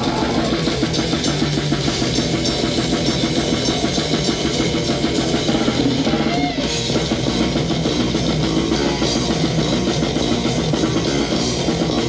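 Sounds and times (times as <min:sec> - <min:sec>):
distorted electric guitar riff: 0:00.0 - 0:12.0
rapid drumming with cymbals: 0:00.0 - 0:12.0.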